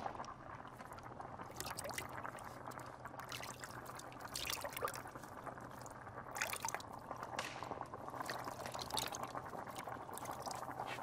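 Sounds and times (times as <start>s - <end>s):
stew bubbling in a pot: 0.0s - 11.0s
wood fire crackling: 0.0s - 11.0s.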